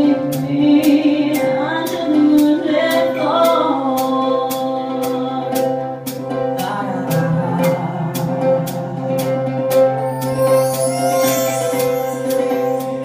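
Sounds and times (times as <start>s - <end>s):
cello and ukulele: 0.0s - 13.0s
person singing: 0.0s - 13.0s
high percussion beat: 7.6s - 13.0s.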